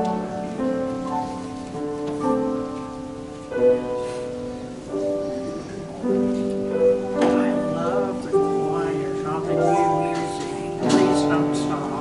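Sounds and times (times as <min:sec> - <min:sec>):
faint rustling haze: 0:00.0 - 0:12.0.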